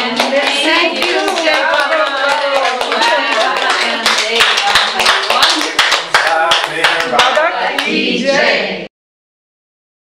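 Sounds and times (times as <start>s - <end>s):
audience applauding: 0.0s - 7.9s.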